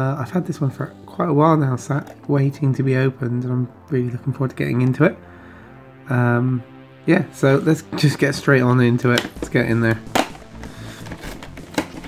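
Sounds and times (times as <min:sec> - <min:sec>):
cardboard box crackling snap: 0:09.1 - 0:12.0
box rustling in hands: 0:09.2 - 0:12.0.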